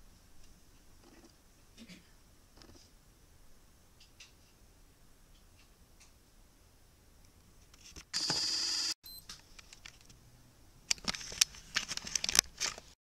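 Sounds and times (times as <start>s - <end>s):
electronic beep: 8.2s - 9.2s.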